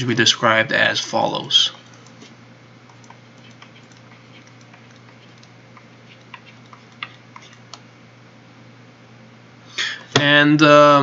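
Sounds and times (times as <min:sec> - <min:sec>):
steady low hum: 0:00.0 - 0:11.0
stylus tapping on tablet screen: 0:02.9 - 0:07.8.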